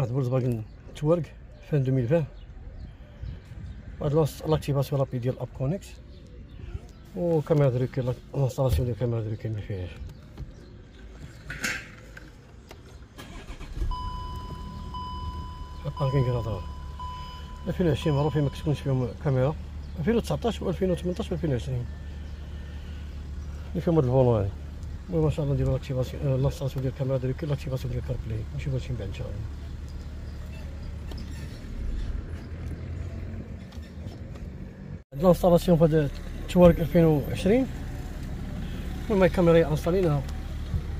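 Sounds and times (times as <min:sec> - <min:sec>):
engine idling hum: 0:12.2 - 0:40.9
parking sensor steady high tone: 0:13.9 - 0:19.2.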